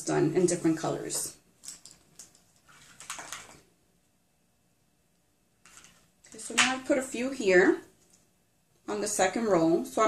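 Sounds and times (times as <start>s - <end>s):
light handling clicks and rustles: 1.6s - 3.6s.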